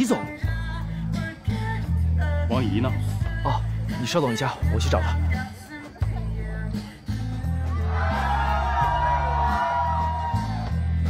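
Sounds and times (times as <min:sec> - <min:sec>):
rock music with heavy bass: 0:00.0 - 0:11.0.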